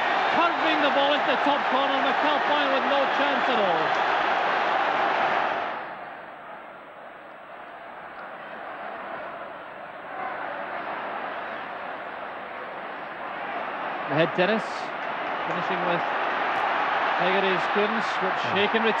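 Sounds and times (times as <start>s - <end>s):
stadium crowd cheering: 0.0s - 19.0s
steady crowd noise: 0.0s - 19.0s.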